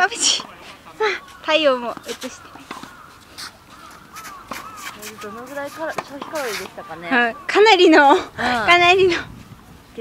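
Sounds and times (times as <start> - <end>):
tennis racket hitting ball: 1.6 - 7.2.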